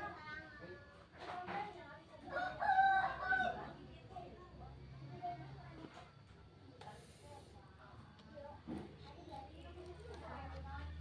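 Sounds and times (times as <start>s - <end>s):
rooster crowing: 2.3s - 3.7s.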